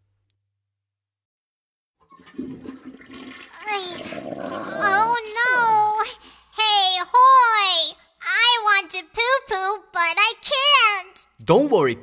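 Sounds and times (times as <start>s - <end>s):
cartoon toilet flush: 2.0s - 5.8s
cartoon voice: 4.6s - 6.1s.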